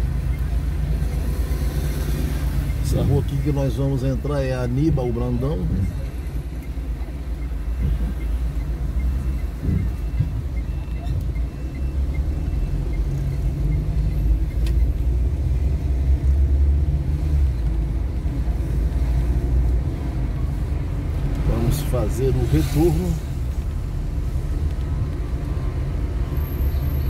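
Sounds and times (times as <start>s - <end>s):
car engine and road noise: 0.0s - 27.0s
turn signal ticking: 0.0s - 27.0s.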